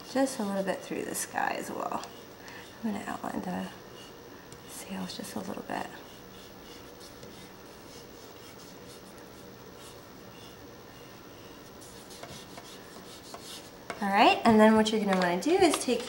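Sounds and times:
faint steady hum: 0.0s - 16.0s
oil pastel scratching on paper: 5.9s - 13.7s.

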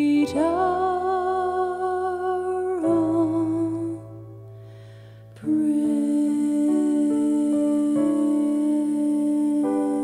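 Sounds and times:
person singing a hymn: 0.0s - 4.1s, 5.4s - 10.0s.

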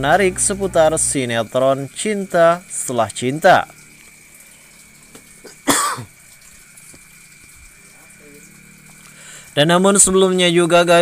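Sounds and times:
low hum: 0.0s - 2.9s
faint high whine: 0.0s - 11.0s
man coughing: 5.4s - 6.1s.

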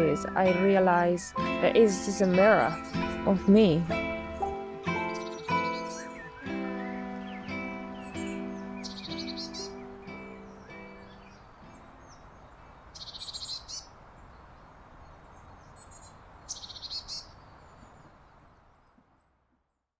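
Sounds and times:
plucked acoustic guitar notes: 0.0s - 12.1s
songbird trilling: 0.0s - 14.0s, 15.3s - 18.0s.

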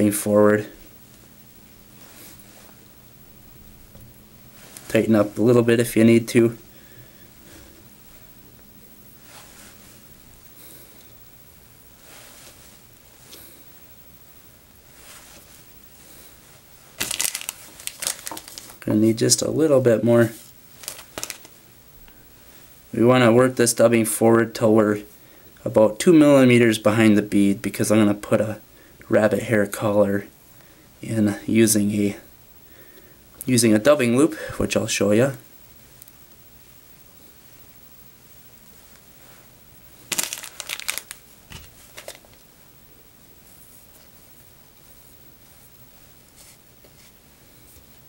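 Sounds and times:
synthetic material crackling: 16.8s - 18.8s, 20.2s - 21.6s, 40.0s - 42.4s.

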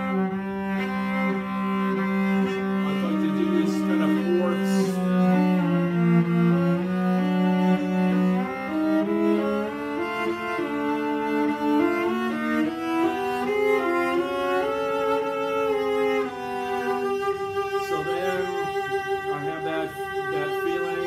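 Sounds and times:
bowed cello: 0.0s - 21.0s.

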